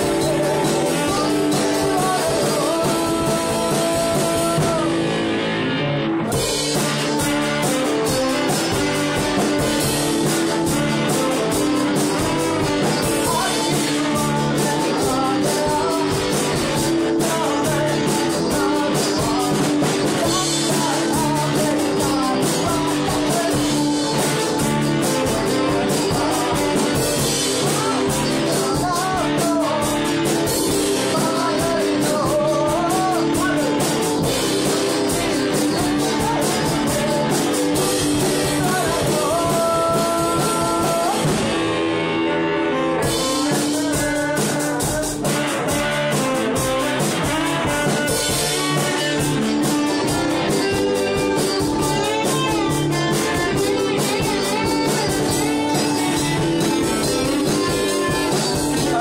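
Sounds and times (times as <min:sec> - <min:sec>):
electric guitars: 0:00.0 - 0:59.0
saxophone melody: 0:06.3 - 0:15.2, 0:45.2 - 0:59.0.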